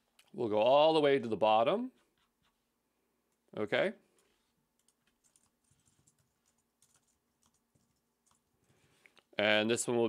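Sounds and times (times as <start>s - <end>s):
computer keyboard typing: 4.7s - 8.7s.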